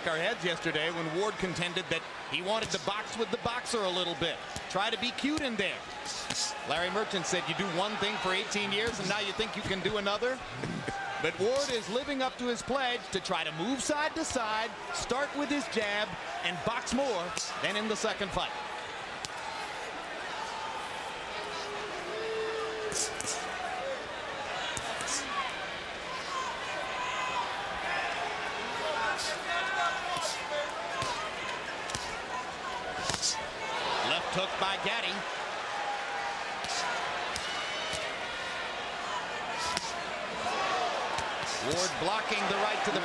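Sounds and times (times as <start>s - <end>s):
crowd noise: 0.0s - 43.0s.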